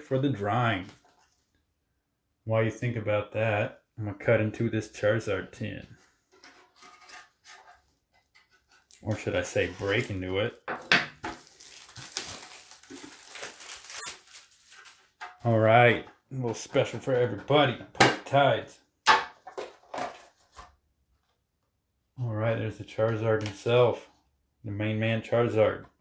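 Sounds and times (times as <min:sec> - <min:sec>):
knife slicing plastic wrap: 0:11.3 - 0:14.6.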